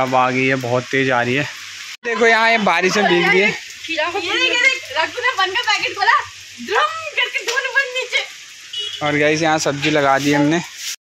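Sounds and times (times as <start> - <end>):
heavy rain falling: 0.0 - 11.0
person speaking: 2.0 - 5.2, 9.1 - 10.7.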